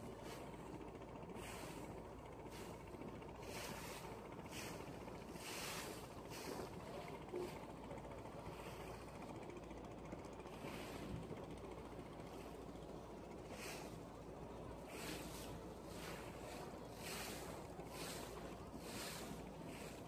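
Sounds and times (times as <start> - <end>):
wind: 0.0 - 20.0
river water splashing: 1.3 - 7.6, 14.7 - 20.0.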